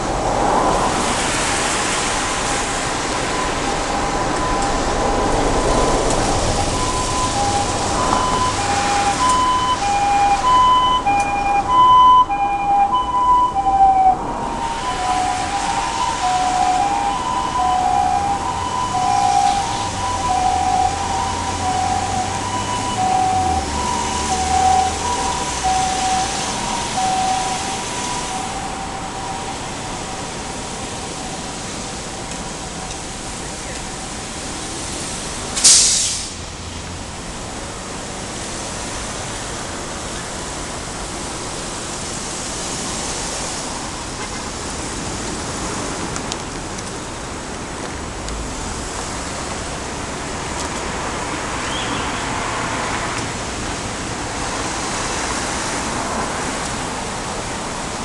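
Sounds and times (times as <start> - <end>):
road traffic: 0.0 - 58.0
two-tone ambulance siren: 0.7 - 34.9, 42.6 - 45.6.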